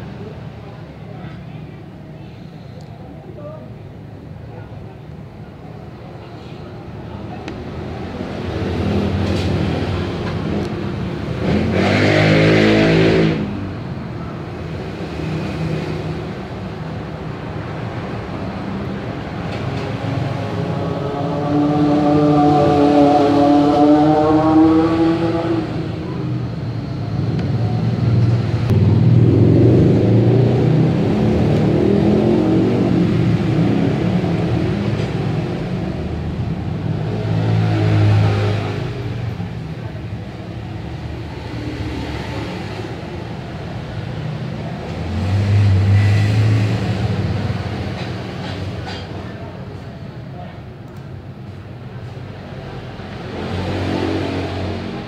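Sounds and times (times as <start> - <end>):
vehicle engines passing: 0.0 - 55.0.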